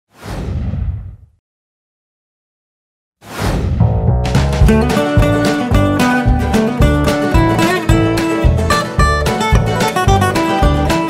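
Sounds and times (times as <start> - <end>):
whoosh sound effect: 3.2 - 4.5.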